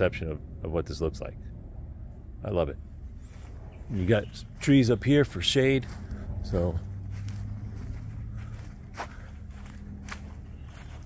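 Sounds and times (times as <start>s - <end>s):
steady low hum: 0.0s - 11.0s
footsteps on grass: 3.1s - 11.0s.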